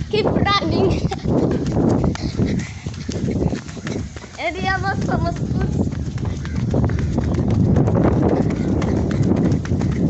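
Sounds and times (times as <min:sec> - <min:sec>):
running footsteps on concrete: 0:00.0 - 0:10.0.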